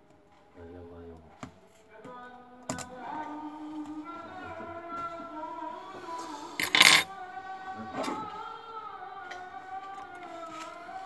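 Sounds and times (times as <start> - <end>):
faint background music: 0.0 - 11.0
small hard parts clattering: 6.6 - 7.1.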